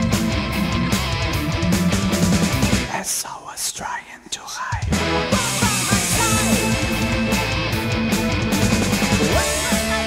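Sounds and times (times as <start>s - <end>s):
bass and drums: 0.0s - 3.0s, 4.7s - 10.0s.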